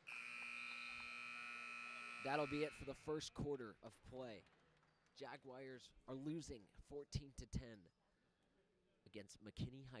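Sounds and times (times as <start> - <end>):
scoreboard buzzer long tone: 0.0 - 3.0.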